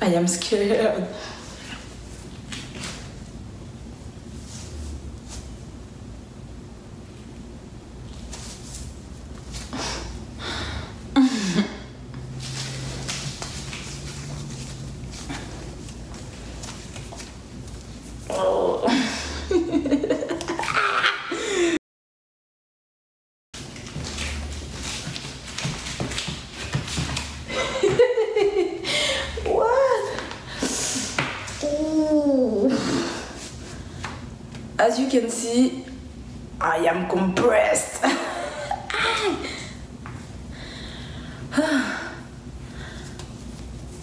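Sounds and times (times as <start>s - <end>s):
low room hum: 0.0s - 21.8s, 23.6s - 44.0s.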